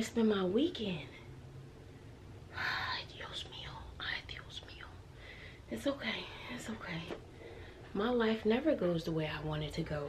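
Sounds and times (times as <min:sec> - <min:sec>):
woman whispering: 0:02.5 - 0:05.0, 0:05.7 - 0:07.2.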